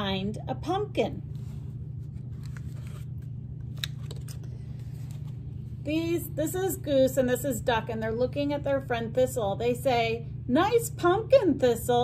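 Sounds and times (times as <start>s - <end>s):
low room hum: 0.0s - 12.0s
book clicks and page rustles: 1.3s - 5.6s.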